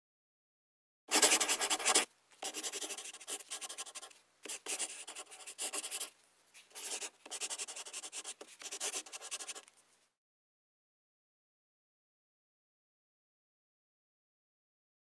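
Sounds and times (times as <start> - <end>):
pen scratching on paper: 1.1 - 6.1, 6.7 - 9.7.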